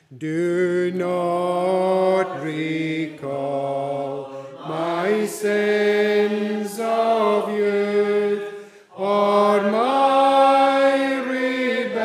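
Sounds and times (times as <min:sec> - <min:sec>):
congregation singing unaccompanied: 0:00.2 - 0:12.0.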